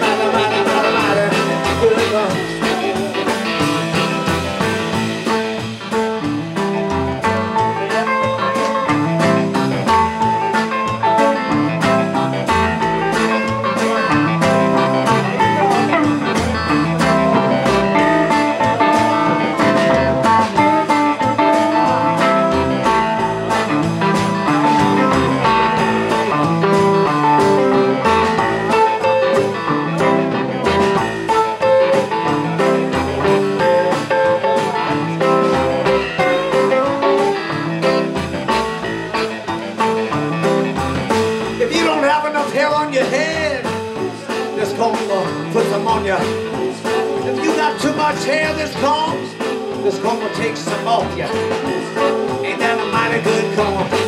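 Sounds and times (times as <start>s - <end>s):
drum kit: 0.0s - 54.0s
electric guitar: 0.0s - 54.0s
keyboard: 0.0s - 54.0s
upright bass: 0.0s - 54.0s.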